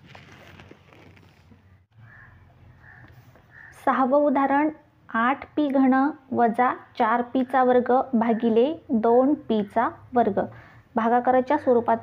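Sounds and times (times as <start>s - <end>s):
faint bird calls: 1.7s - 3.9s.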